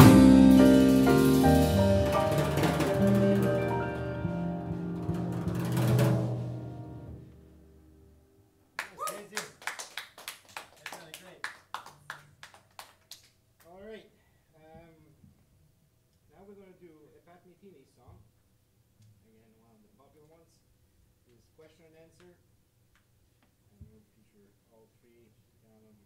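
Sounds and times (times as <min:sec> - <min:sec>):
jazz combo chord ringing: 0:00.0 - 0:08.2
scattered applause: 0:08.8 - 0:13.3.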